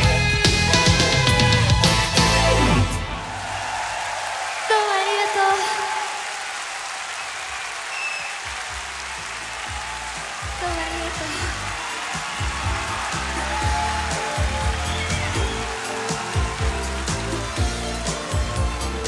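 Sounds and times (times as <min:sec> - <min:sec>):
live band playing: 0:00.0 - 0:03.1, 0:12.1 - 0:19.0
concert crowd noise: 0:00.0 - 0:19.0.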